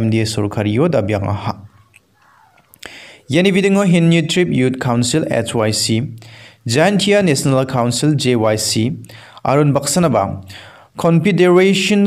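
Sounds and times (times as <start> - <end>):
narrator speaking: 0.0 - 12.0
mouth click: 1.8 - 3.0
breath: 2.8 - 3.3, 6.2 - 6.6, 9.1 - 9.4, 10.5 - 11.0.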